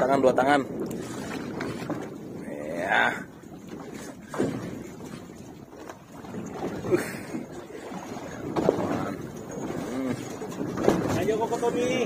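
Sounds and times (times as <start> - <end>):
sea rumble: 0.0 - 12.0
wind on microphone: 0.0 - 12.0.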